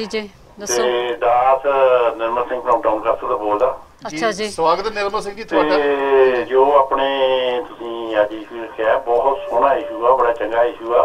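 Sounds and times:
person talking over telephone line: 0.0 - 4.5, 5.4 - 11.0.

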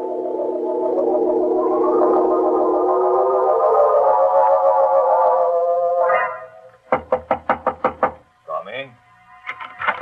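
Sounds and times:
music bridge: 0.0 - 6.8
knocks on a door: 6.9 - 8.2.

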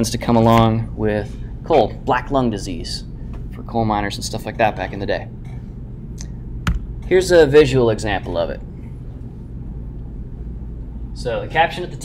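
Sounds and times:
constant hum: 0.0 - 12.0.

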